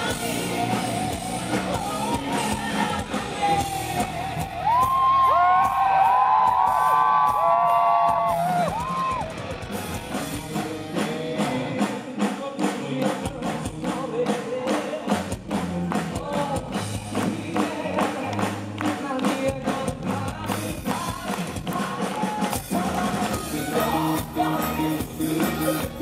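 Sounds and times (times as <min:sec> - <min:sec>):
drums: 0:00.0 - 0:26.0
electric guitar: 0:00.0 - 0:26.0.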